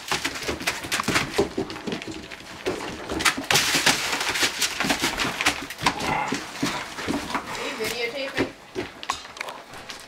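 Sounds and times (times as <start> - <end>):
puppies scratching on newspaper: 0.0 - 9.1.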